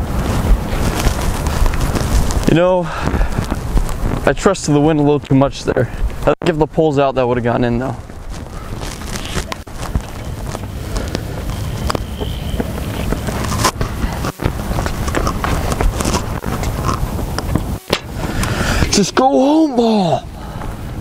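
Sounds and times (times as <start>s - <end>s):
wind buffeting microphone: 0.0s - 19.2s.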